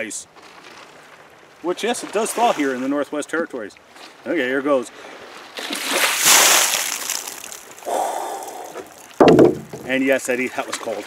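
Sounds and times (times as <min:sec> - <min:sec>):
water pouring and splashing: 0:00.5 - 0:02.9, 0:05.5 - 0:11.0.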